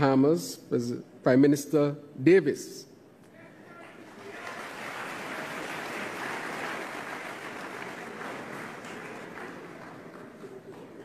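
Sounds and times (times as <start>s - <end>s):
audience applauding: 3.7s - 11.0s.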